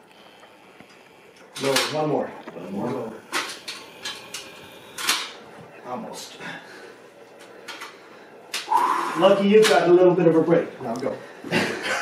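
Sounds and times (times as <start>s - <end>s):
man's forceful hissing exhalations: 8.6s - 9.4s.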